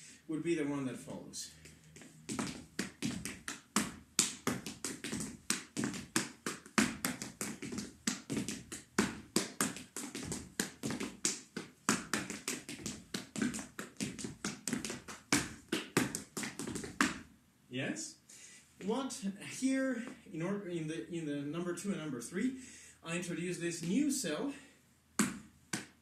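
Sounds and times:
hand slapping heel: 1.6 - 17.3, 25.2 - 26.0
shoes tapping on wooden floor: 1.6 - 17.3.

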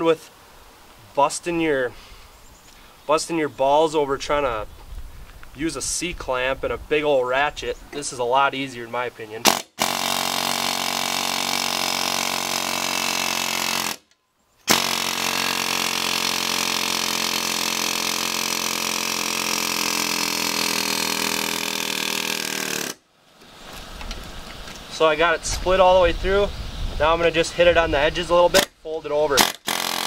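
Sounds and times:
pneumatic air hammer rattling: 9.4 - 23.0, 29.4 - 30.0.

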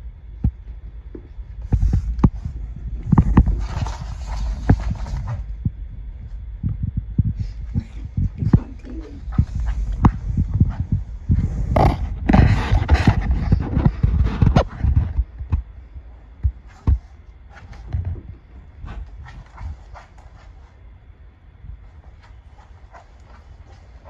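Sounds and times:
animal feet clicking on hard floor: 0.4 - 5.7, 6.7 - 20.8, 21.8 - 24.0.

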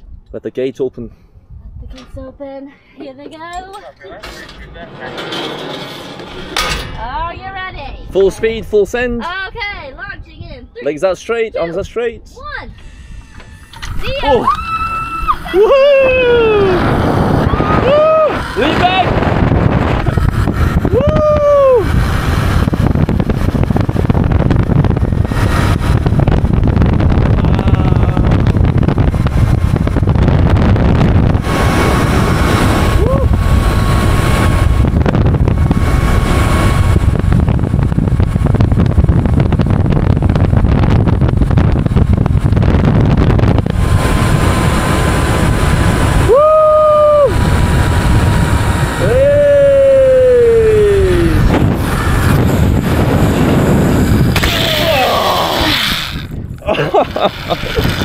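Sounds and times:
wind buffeting microphone: 1.3 - 58.0
person whooping: 13.5 - 19.1, 20.9 - 22.0, 27.4 - 28.3, 33.0 - 33.4, 46.2 - 47.4, 49.0 - 51.4, 54.4 - 55.8
faint high whine: 43.6 - 56.3.

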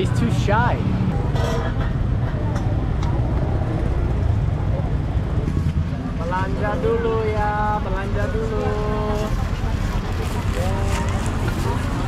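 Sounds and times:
faint voices of people: 0.0 - 12.0
street traffic rumble: 0.0 - 12.0.

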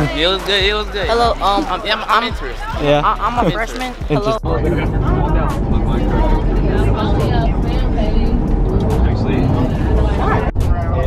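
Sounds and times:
engine and road rumble: 0.0 - 11.0
passengers chatting: 0.0 - 11.0
person laughing: 3.4 - 4.4.

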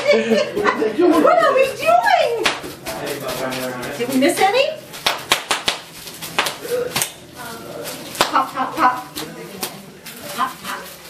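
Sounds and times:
bubble wrap popping: 4.9 - 11.0.

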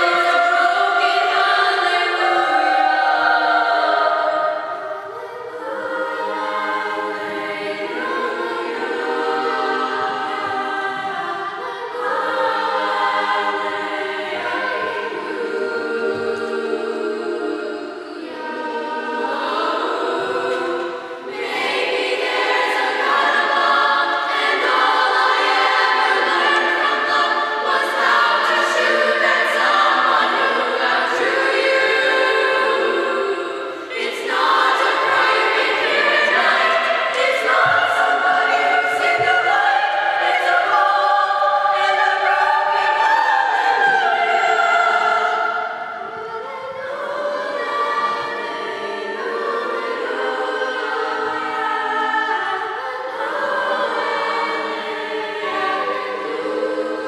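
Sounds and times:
chorus singing: 0.0 - 57.0.

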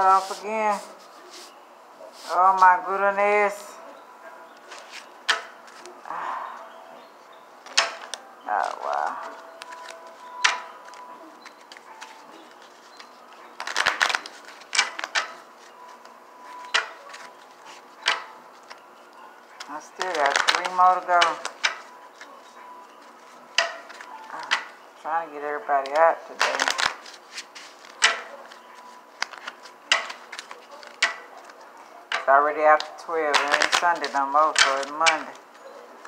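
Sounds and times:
cards being shuffled: 7.7 - 18.8, 19.6 - 22.3, 22.9 - 24.7, 25.8 - 35.5.

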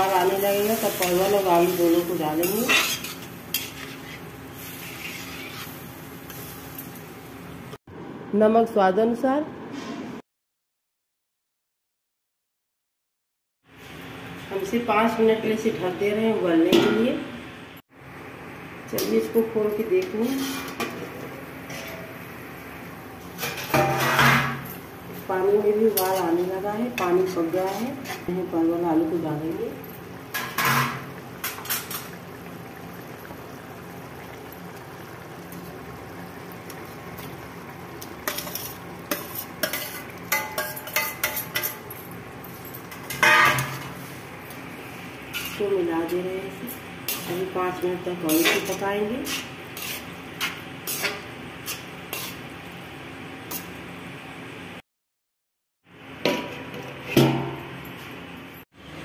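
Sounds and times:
metal utensils clinking on pot: 2.4 - 3.9, 38.3 - 43.8, 48.2 - 52.3.

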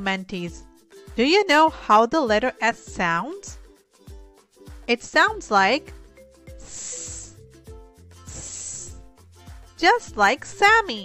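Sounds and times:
children's music with beat: 0.0 - 11.0
person hissing sss: 6.5 - 7.5, 8.2 - 9.2.

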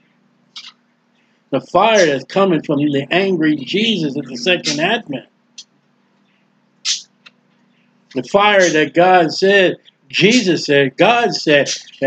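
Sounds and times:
faint electrical hum: 0.0 - 12.0.

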